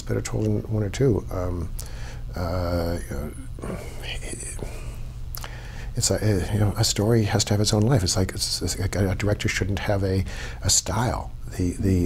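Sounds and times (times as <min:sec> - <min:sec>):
low room hum: 0:00.0 - 0:12.0
man whispering hesitantly: 0:03.3 - 0:05.0.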